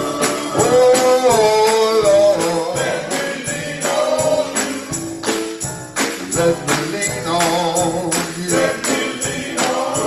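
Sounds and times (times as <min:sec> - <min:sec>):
male vocal group singing gospel: 0:00.0 - 0:05.4, 0:06.1 - 0:10.0
tambourine: 0:00.0 - 0:10.0
hand claps: 0:00.1 - 0:10.0.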